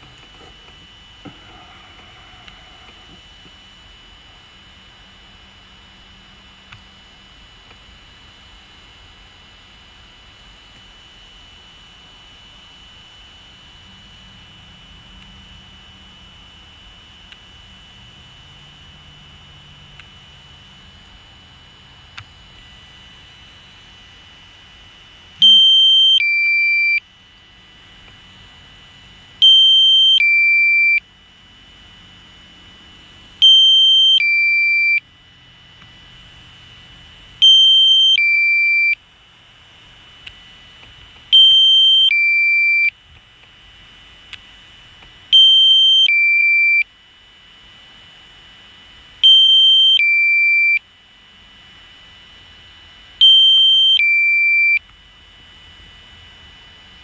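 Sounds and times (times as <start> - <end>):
faint steady tone: 0.0 - 57.0
two-tone warning beep: 25.4 - 27.1, 29.4 - 31.1, 33.4 - 35.1, 37.4 - 39.0, 41.3 - 43.0, 45.3 - 46.9, 49.2 - 50.9, 53.2 - 54.9.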